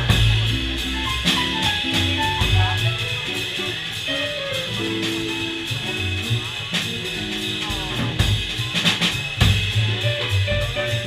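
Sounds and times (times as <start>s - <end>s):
drum kit cymbals: 0.0s - 11.0s
jazz band playing: 0.0s - 11.0s.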